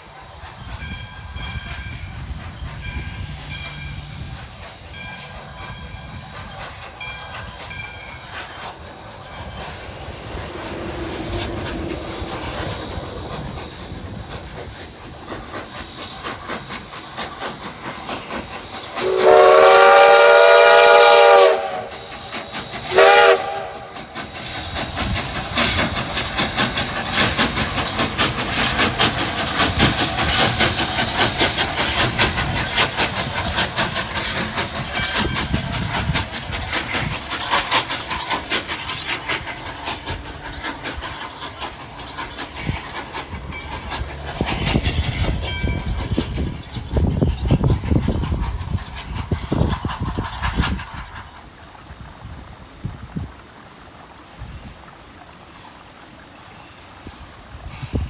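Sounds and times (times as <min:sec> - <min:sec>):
steam locomotive chuffing: 0:00.0 - 0:58.0
steam whistle blasts: 0:18.9 - 0:24.2.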